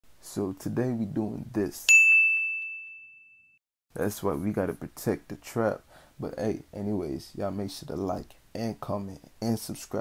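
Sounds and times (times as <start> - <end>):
bright bell ding: 1.9 - 3.6.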